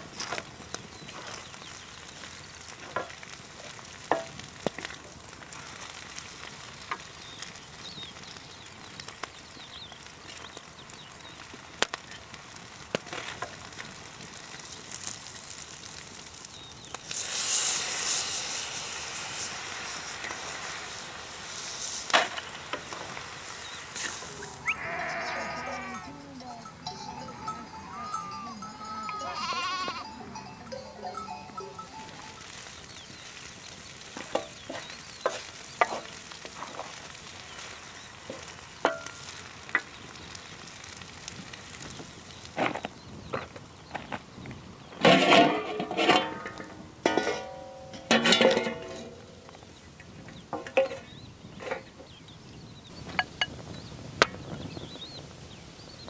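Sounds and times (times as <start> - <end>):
food sizzling: 0.0 - 49.7
sheep bleating: 24.4 - 32.2
utensils clicking on pan: 34.2 - 36.9
wooden spatula scraping pan: 34.2 - 36.9, 45.0 - 47.5.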